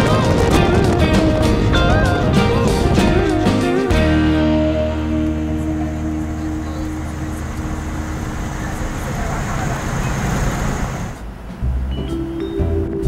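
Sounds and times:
music: 0:00.0 - 0:08.7, 0:11.4 - 0:13.0
car cabin road noise: 0:00.0 - 0:13.0.

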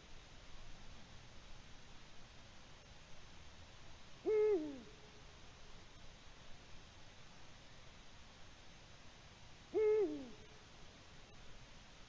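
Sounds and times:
owl hooting: 0:04.2 - 0:05.0, 0:09.7 - 0:10.5.

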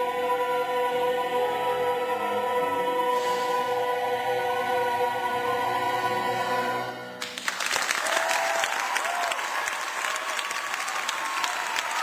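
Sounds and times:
audience applause: 0:07.2 - 0:12.0.

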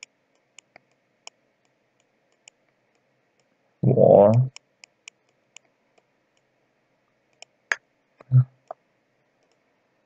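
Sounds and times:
computer mouse clicks: 0:00.0 - 0:03.5, 0:07.3 - 0:07.6, 0:09.4 - 0:09.6
person saying uh: 0:03.8 - 0:04.5.

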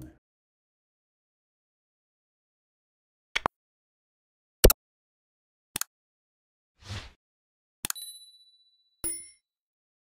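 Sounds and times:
click with ringing ding: 0:07.9 - 0:09.5.

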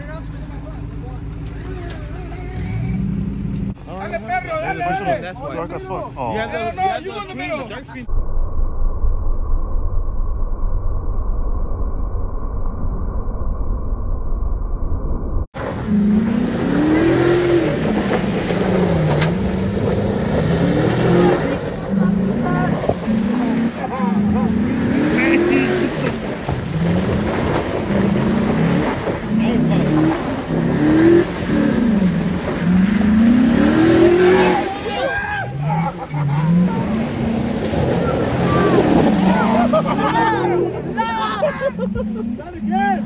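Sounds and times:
truck engine revving: 0:00.0 - 0:06.2, 0:15.5 - 0:43.0.

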